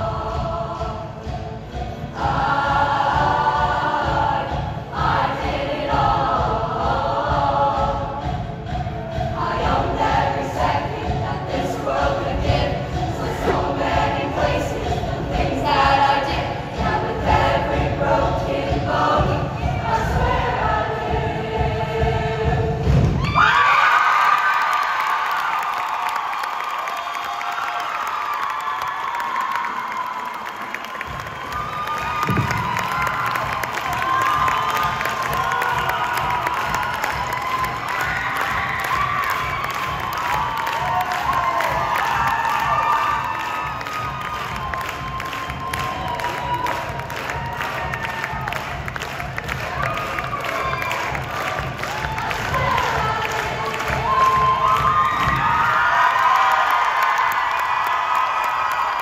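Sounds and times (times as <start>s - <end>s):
choir singing: 0.0s - 23.2s, 32.2s - 55.7s
audience cheering and screaming: 23.0s - 59.0s.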